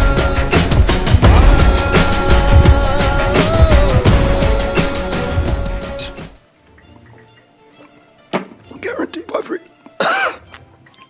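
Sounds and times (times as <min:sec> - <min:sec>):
man coughing outburst: 0:10.0 - 0:10.4.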